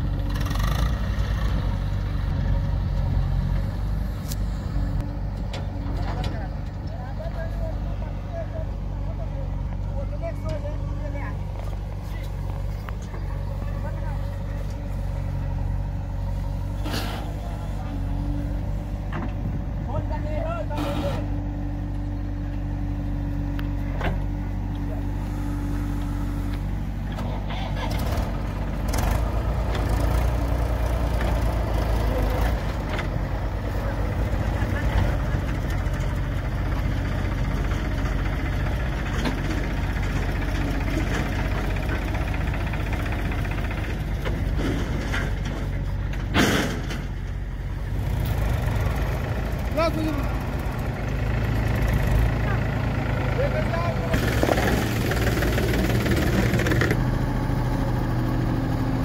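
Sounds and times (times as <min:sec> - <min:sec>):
diesel engines running: 0:00.0 - 0:59.0.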